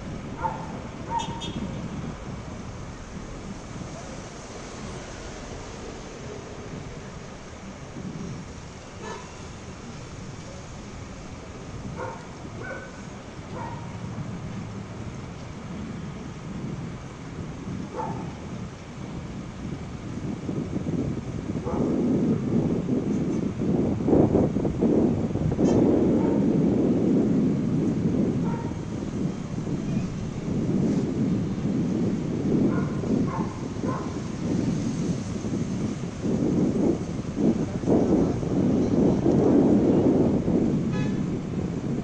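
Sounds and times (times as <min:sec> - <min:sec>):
continuous low outdoor rumble: 0:00.0 - 0:42.0.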